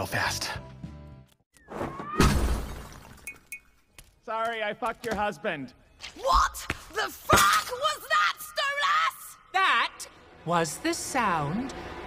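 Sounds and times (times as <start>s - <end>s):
music: 0.0s - 1.4s.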